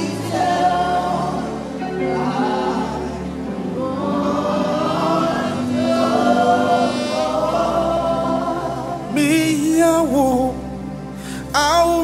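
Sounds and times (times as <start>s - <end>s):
lead vocal with vibrato: 0.0s - 12.0s
vocal group singing a hymn: 0.0s - 12.0s.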